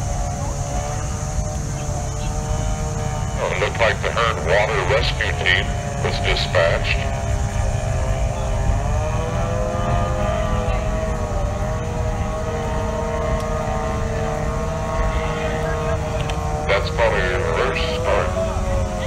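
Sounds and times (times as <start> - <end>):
outboard engine at high revs: 0.0 - 19.0.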